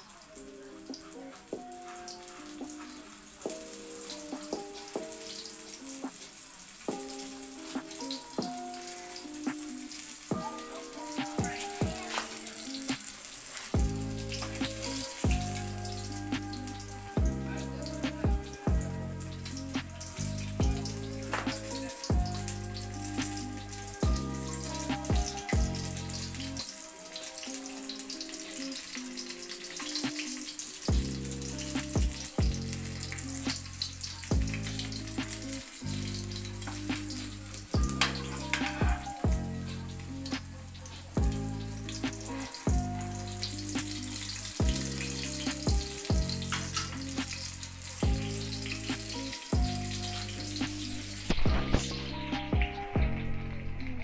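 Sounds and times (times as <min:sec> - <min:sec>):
background music: 0:00.0 - 0:54.0
food sizzling in oil: 0:00.0 - 0:54.0.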